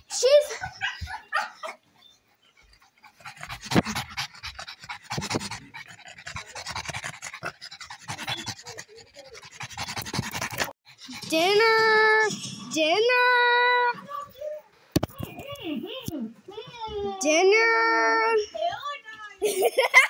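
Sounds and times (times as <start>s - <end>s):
dog panting rapidly: 0.0s - 12.1s.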